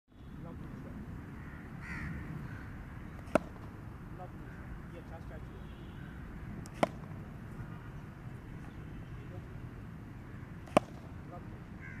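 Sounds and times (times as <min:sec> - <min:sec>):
crow cawing: 0:01.3 - 0:03.2, 0:04.4 - 0:04.9, 0:05.8 - 0:06.6, 0:10.2 - 0:10.6, 0:11.7 - 0:12.0.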